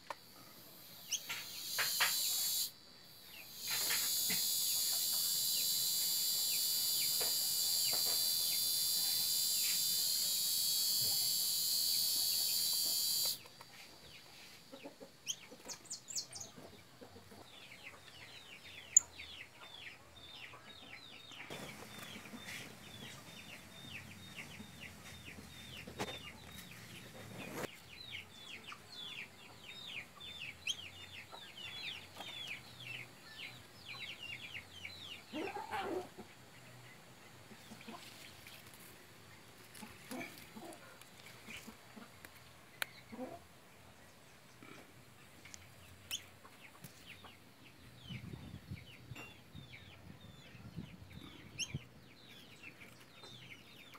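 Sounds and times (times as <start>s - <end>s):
high-pitched insect chorus: 0.0s - 14.6s
birds chirping: 0.0s - 53.9s.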